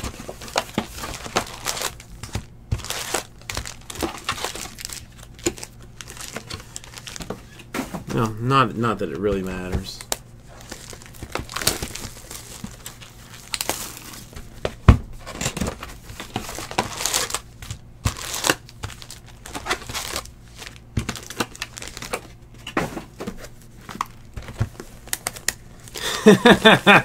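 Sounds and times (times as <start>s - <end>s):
foil wrappers crinkling: 0.0s - 27.0s.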